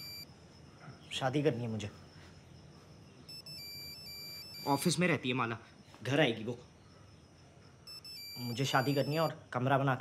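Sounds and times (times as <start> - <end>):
high electronic beeping: 0.0 - 0.2, 3.3 - 5.0, 7.9 - 9.3.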